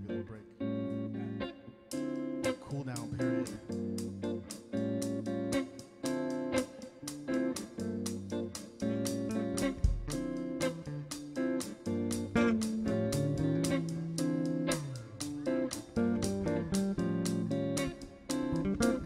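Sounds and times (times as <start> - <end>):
live band instrumental groove: 1.9 - 19.0.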